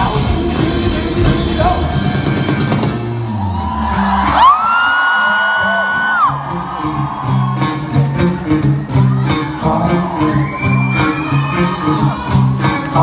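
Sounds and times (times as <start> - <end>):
bass and drums: 0.0 - 13.0
indie rock band playing live: 0.0 - 13.0.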